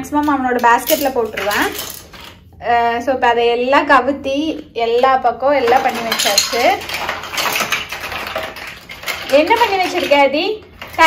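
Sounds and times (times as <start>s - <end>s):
plastic toy blocks clattering: 0.2s - 2.4s, 5.6s - 11.0s.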